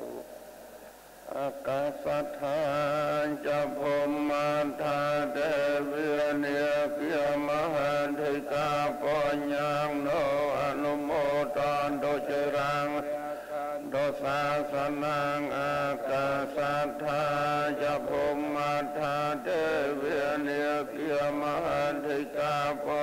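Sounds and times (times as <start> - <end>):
monks chanting in unison: 1.3 - 23.0.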